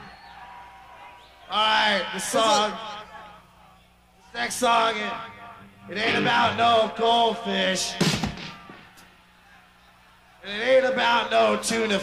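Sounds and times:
amplifier hum: 5.0 - 7.5.

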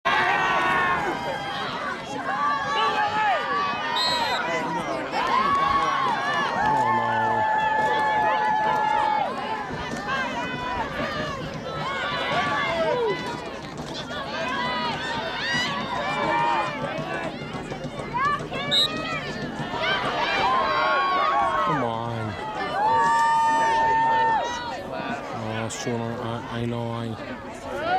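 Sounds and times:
spectators shouting: 0.1 - 13.4, 14.2 - 25.6.

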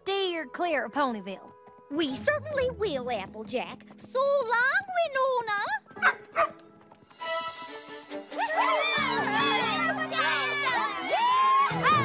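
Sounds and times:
soft music: 0.0 - 12.0.

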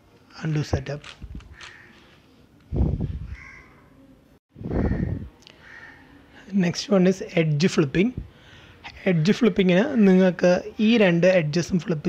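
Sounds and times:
crow cawing: 1.5 - 2.1, 3.3 - 3.9, 4.7 - 6.2.

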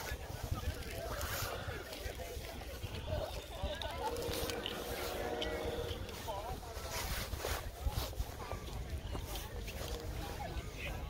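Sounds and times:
wind on microphone: 0.0 - 11.0
distant voices calling: 2.8 - 6.8.

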